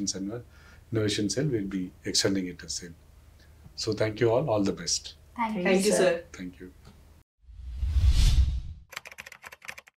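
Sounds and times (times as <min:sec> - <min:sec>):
whoosh with low rumble: 0:07.4 - 0:08.8
keyboard typing clicks: 0:08.9 - 0:09.9.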